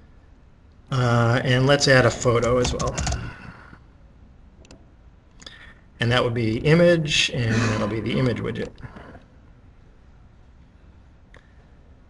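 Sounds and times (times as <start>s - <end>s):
keyboard typing clicks: 2.4s - 3.3s.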